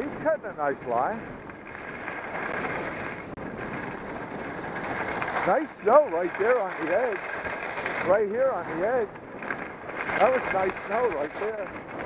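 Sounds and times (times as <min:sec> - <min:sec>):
skis sliding over snow: 0:00.0 - 0:12.0.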